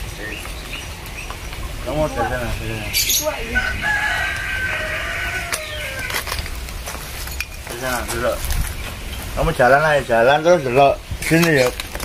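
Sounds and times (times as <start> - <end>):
long drawn-out bird call: 2.4 - 6.2.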